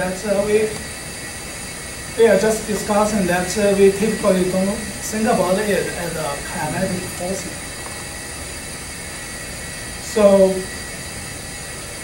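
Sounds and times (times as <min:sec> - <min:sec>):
room tone hiss: 0:00.0 - 0:12.0.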